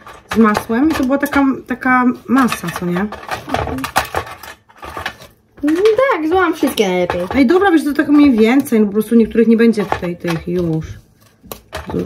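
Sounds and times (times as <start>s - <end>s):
biscuits rustling and clattering: 0.0s - 12.0s.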